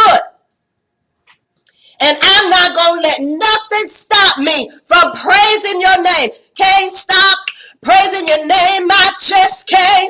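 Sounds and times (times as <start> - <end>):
woman speaking: 2.0 - 10.0.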